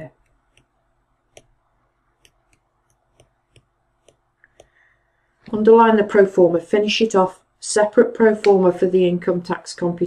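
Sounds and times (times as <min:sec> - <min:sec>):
stylus tapping on tablet: 0:00.1 - 0:05.0.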